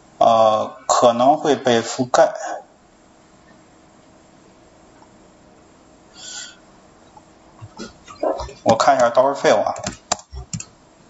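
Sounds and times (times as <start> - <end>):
breath near microphone: 6.1 - 6.6
mouth sound: 7.6 - 9.1.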